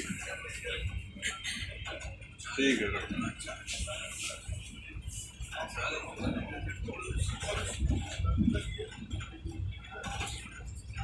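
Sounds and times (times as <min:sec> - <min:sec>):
train rumble and rail clatter: 0:00.0 - 0:11.0.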